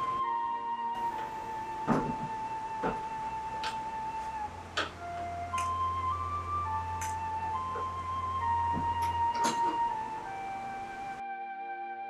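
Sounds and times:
low drone: 0.0 - 11.2
slow melody of held notes: 0.0 - 12.0.

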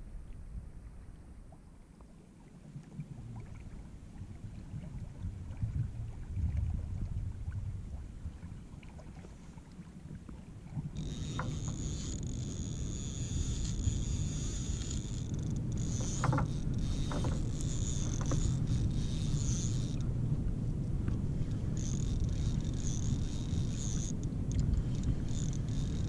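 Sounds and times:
wind on microphone: 0.0 - 1.8, 3.0 - 26.0
water rumbling around kayak: 0.0 - 26.0
small scattered clicks: 11.0 - 20.1, 21.8 - 26.0.

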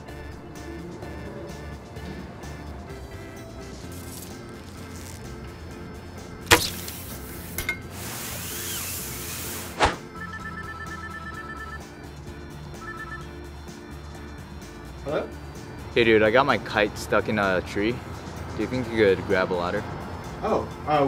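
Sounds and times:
background music: 0.0 - 21.0
hard thud: 6.5 - 7.0
arrow shot and hit: 6.5 - 7.7, 9.6 - 10.1
whoosh of sliding down rope: 7.9 - 10.0
phone ringtone trilling: 10.1 - 13.6.

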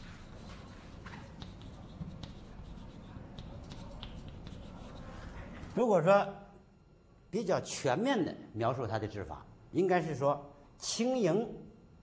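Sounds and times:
chalk tapping and scratching: 0.0 - 5.7.

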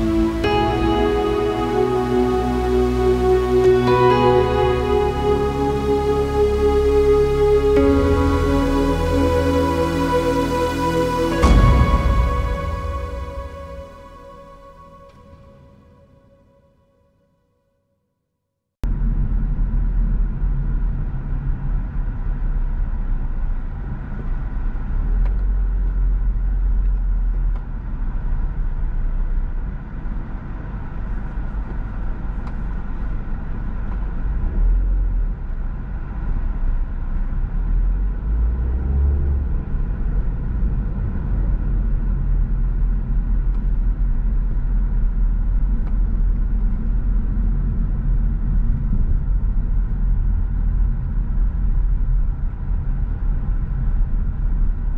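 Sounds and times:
car engine and tyre rumble: 18.8 - 54.9.

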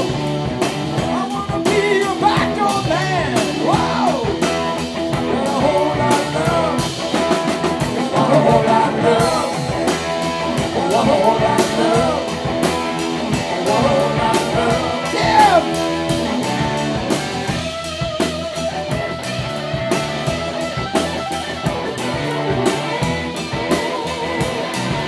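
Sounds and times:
drum kit beat: 0.0 - 25.0
electric bass: 0.0 - 25.0
electric guitars: 0.0 - 25.0
person singing: 1.0 - 16.5.

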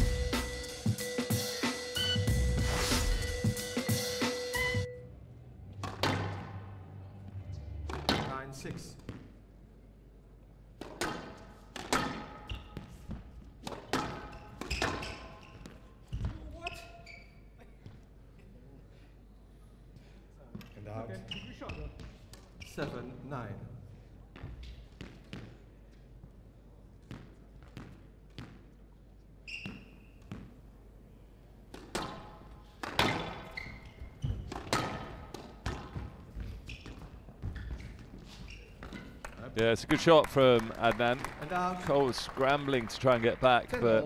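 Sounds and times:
drum kit music: 0.0 - 4.9
squash ball impacts: 5.7 - 6.7, 7.9 - 8.4, 10.8 - 16.6, 31.7 - 39.4.

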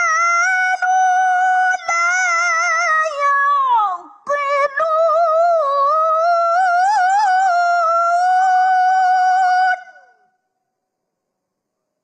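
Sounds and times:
woman reciting melodically: 0.0 - 10.3.

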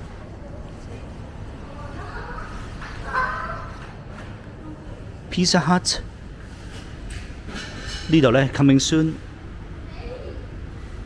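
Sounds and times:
shopping centre background rumble: 0.0 - 11.0.

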